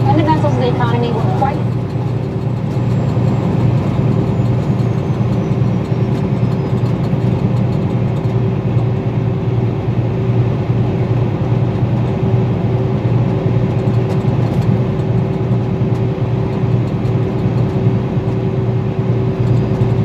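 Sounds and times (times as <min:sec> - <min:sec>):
road and engine noise in car cabin: 0:00.0 - 0:20.0.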